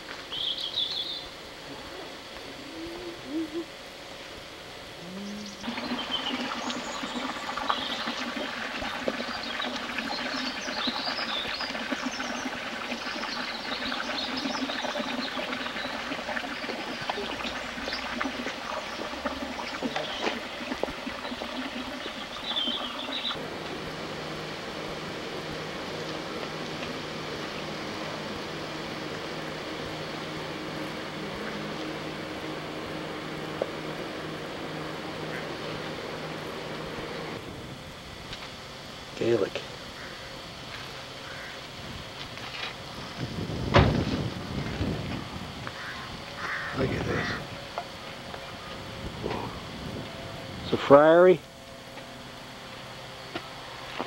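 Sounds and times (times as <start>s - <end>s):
low hum: 0.0s - 54.0s
outdoor hiss: 0.0s - 54.0s
small birds chirping: 0.3s - 1.3s, 5.2s - 8.2s, 9.2s - 12.6s, 18.8s - 20.4s, 22.0s - 23.4s.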